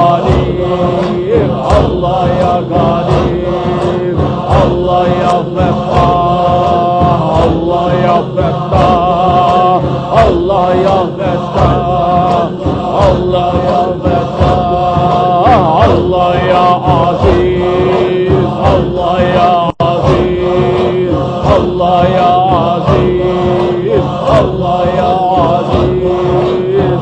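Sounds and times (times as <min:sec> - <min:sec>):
men chanting to steady beat: 0:00.0 - 0:27.0.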